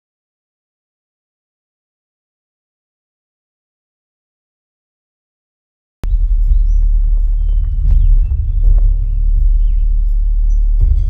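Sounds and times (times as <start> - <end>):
low outdoor rumble: 6.0 - 11.0
small birds chirping: 6.0 - 11.0.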